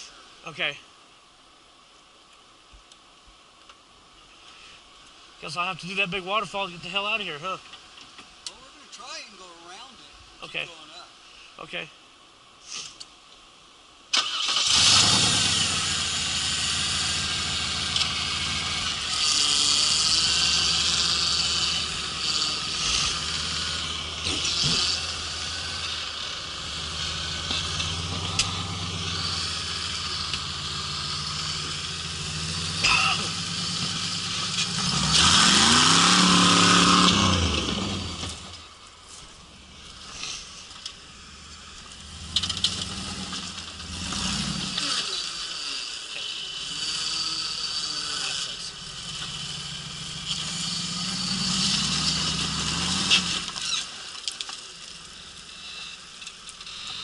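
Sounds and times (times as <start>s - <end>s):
buggy engine revving under load: 14.1s - 38.8s, 39.7s - 54.2s.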